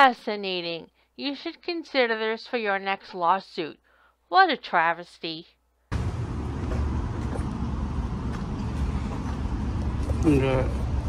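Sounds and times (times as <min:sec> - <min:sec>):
deep outdoor rumble: 0:05.9 - 0:11.0.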